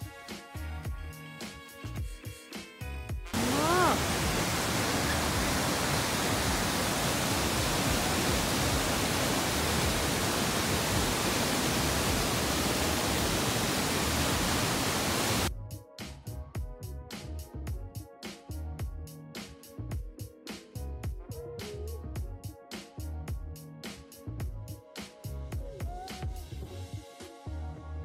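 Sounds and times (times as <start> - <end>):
music: 0.0 - 4.0, 15.5 - 28.0
short rising voice-like sound: 3.4 - 5.3
waterfall rushing: 3.4 - 15.5.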